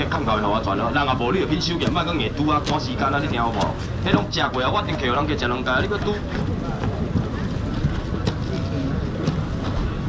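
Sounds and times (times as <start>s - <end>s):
murmur of crowd voices: 0.0s - 10.0s.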